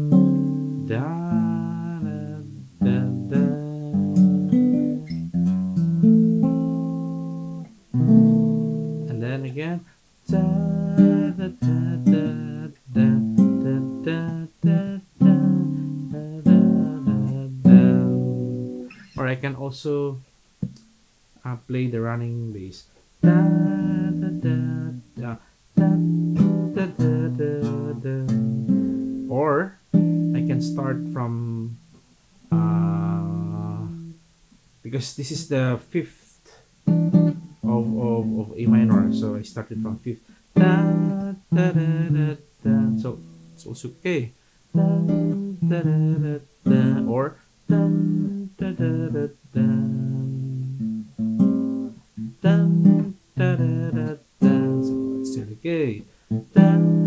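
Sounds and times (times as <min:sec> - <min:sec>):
acoustic guitar chords: 0:00.0 - 0:20.8, 0:21.4 - 0:34.2, 0:34.8 - 0:57.0
wavering vocal sound: 0:32.5 - 0:34.1.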